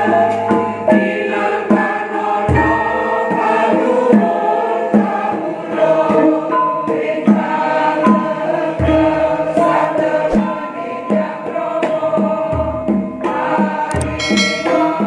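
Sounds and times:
choir singing a hymn: 0.0 - 15.0
gamelan accompaniment: 13.9 - 15.0
deep ringing gong strikes: 14.1 - 15.0.

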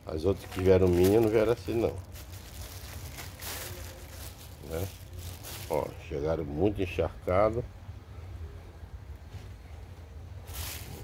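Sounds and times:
plastic bag rustling: 0.2 - 6.1, 10.4 - 11.0.

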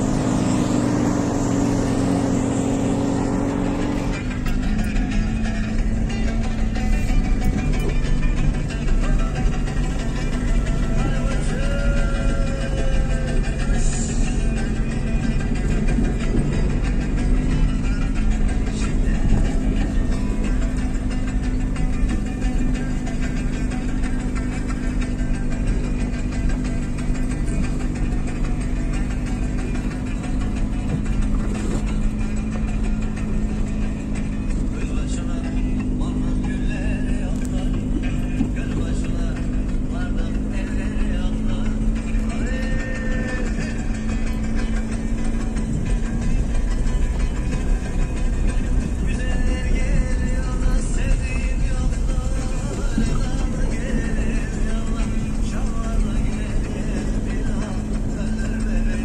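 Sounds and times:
engine drone: 0.0 - 59.0
music playing: 0.0 - 59.0.

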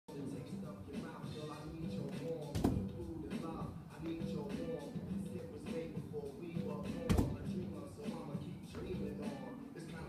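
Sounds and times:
background music with vocals: 0.1 - 10.0
feet landing on padded box: 2.6 - 3.0, 7.1 - 7.5.

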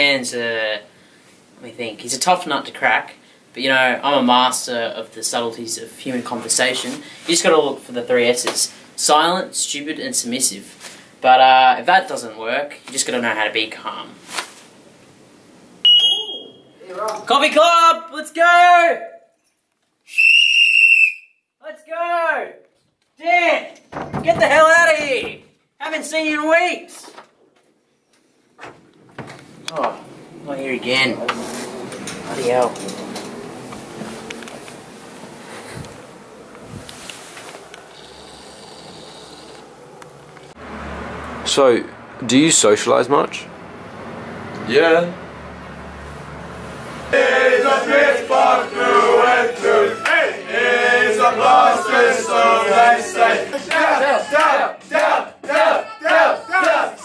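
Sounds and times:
steady low hiss: 0.0 - 20.1, 21.6 - 40.6, 41.5 - 55.4
short breathy hiss: 6.9 - 7.3, 10.8 - 11.2
high-pitched steady tone: 15.9 - 16.8.

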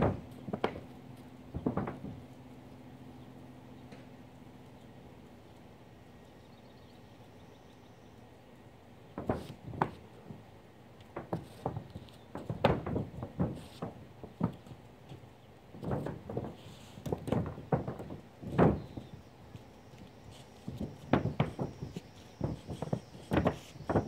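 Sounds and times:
footsteps in flip-flops on roof: 0.0 - 2.8, 9.1 - 24.0.

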